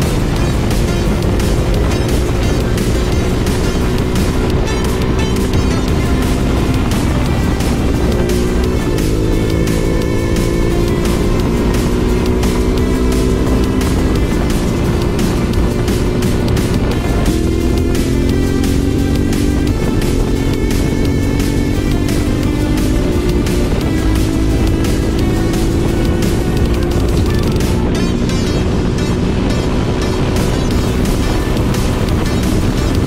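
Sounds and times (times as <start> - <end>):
electronic music with steady beat: 0.0 - 33.0
motorcycle engine accelerating: 0.0 - 33.0.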